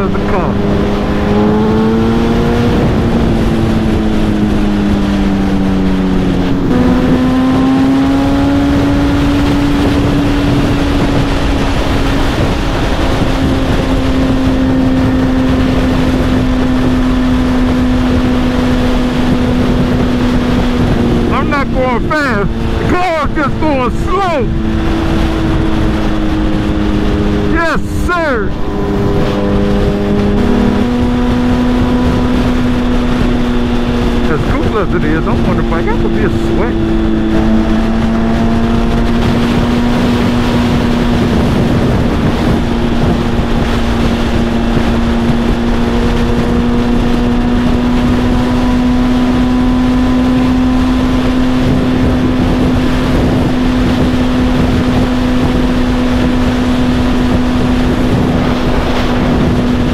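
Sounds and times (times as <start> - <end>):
motorcycle engine running: 0.0 - 59.9
wind and road noise: 0.0 - 59.9.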